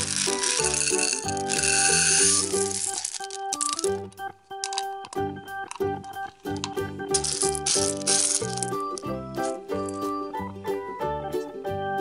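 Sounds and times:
candy balls rattling into bowl: 0:00.0 - 0:10.2
background music: 0:00.0 - 0:12.0.

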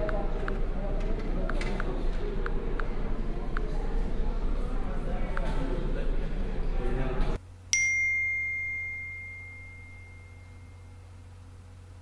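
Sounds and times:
low steady hum: 0:00.0 - 0:12.0
phone notification ding: 0:07.8 - 0:10.9.

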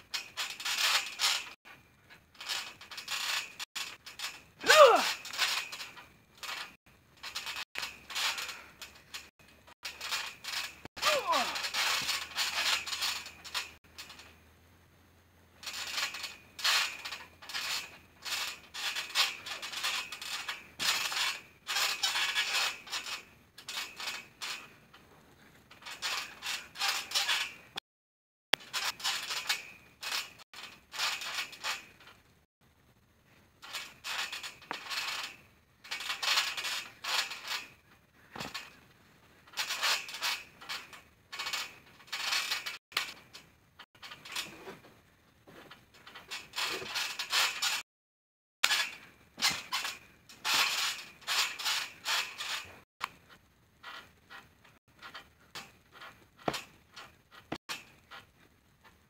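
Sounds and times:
trampoline springs creaking: 0:00.0 - 0:27.8, 0:28.6 - 0:47.8, 0:48.6 - 0:59.0.

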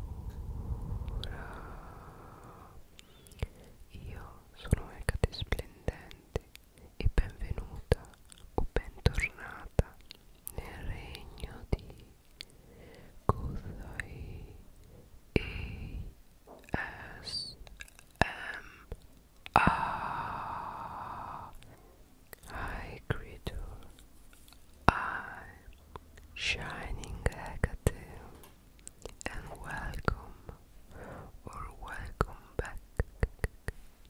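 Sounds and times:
close whispering: 0:00.0 - 0:34.0.

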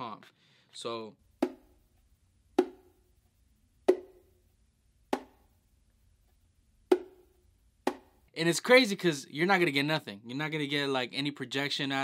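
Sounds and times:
bongo slaps: 0:01.4 - 0:01.7, 0:02.6 - 0:02.9, 0:03.9 - 0:04.2, 0:05.1 - 0:05.4, 0:06.9 - 0:08.2.

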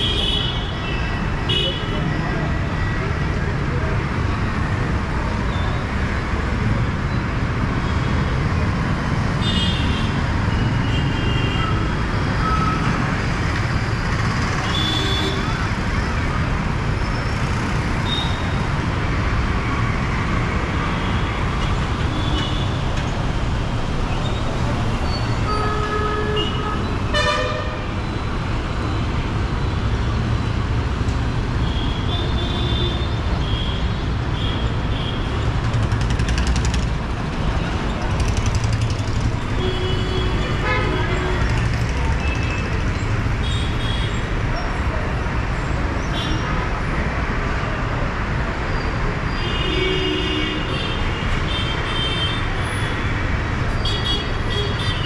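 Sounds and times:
traffic engines and tyres rumbling: 0:00.0 - 0:55.0.

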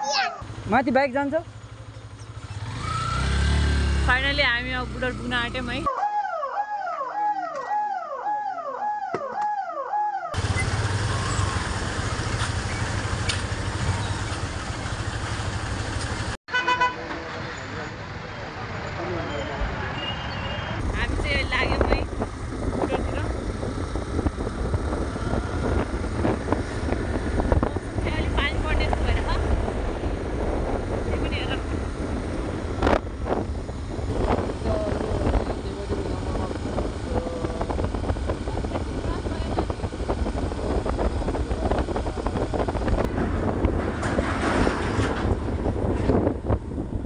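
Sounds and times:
motorcycle traffic rumble: 0:00.0 - 0:05.9, 0:10.4 - 0:47.0
wind buffeting microphone: 0:20.8 - 0:47.0.

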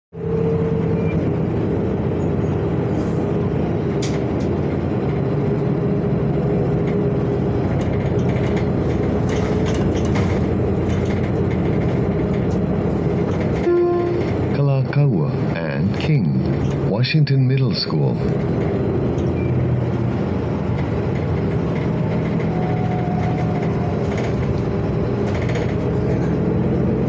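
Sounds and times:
bus engine hum with whine: 0:00.2 - 0:27.0.

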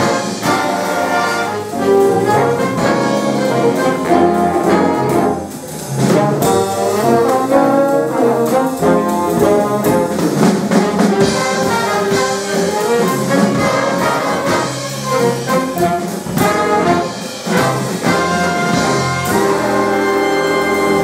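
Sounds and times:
drum strokes: 0:00.0 - 0:21.0
jazz big band playing: 0:00.0 - 0:21.0.

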